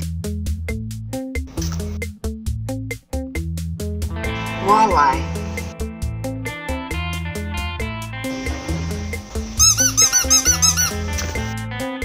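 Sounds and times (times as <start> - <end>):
strummed guitar music: 4.0 - 12.0
high rising and falling squeaks: 9.6 - 11.1.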